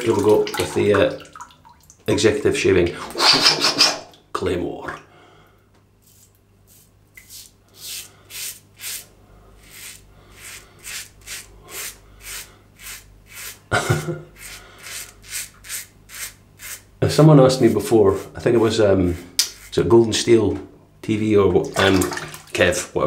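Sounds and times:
razor scraping stubble: 0:03.2 - 0:04.1, 0:06.1 - 0:20.0
short laugh: 0:13.7 - 0:14.3.

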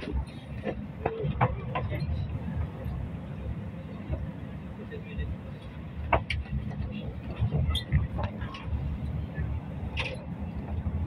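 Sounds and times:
cars passing with low rumble: 0:00.0 - 0:11.0.

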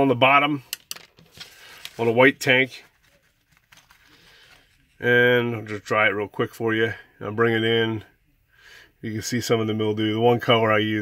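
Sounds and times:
paper towel rustle: 0:01.2 - 0:05.8.

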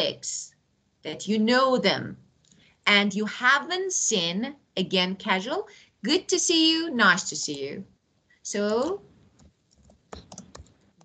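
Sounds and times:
keyboard typing: 0:09.4 - 0:11.0.

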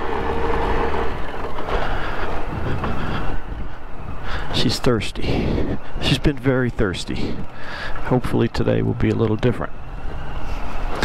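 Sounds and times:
motorcycle engine rumbling: 0:00.0 - 0:09.3.

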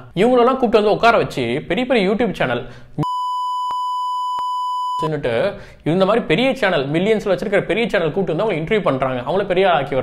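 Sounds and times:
censor bleep: 0:03.0 - 0:05.1.

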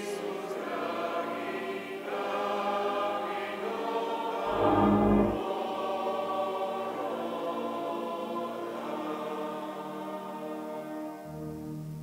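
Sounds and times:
church choir singing: 0:00.0 - 0:11.4
loud low rumble: 0:04.5 - 0:05.4.

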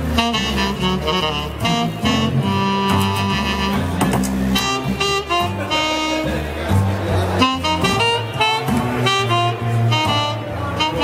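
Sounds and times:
synthesizer jazz melody: 0:00.0 - 0:11.0.

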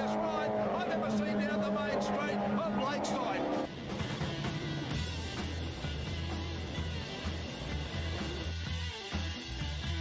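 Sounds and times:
commentator talking: 0:00.0 - 0:03.6
racing car engines at speed: 0:00.0 - 0:08.5.

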